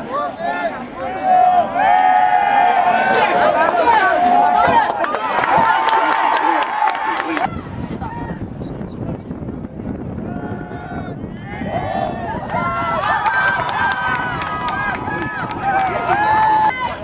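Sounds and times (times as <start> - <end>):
crowd shouting and cheering: 0.0 - 8.7, 10.1 - 17.0
scattered clapping: 3.1 - 7.5, 12.4 - 17.0.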